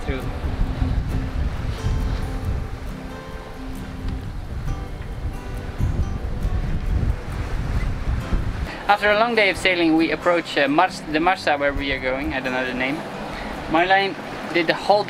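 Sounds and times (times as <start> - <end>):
background music: 0.0 - 15.0
sea water rushing: 0.0 - 15.0
wind buffeting microphone: 0.0 - 15.0.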